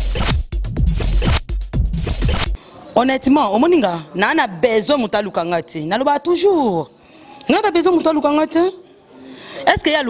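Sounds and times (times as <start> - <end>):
electronic music sting: 0.0 - 2.6
heavy deep bass: 0.0 - 2.6.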